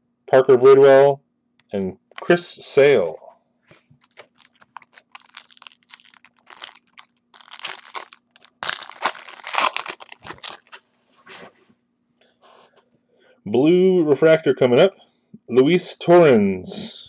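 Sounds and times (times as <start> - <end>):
cards shuffling and rustling: 3.7 - 10.9.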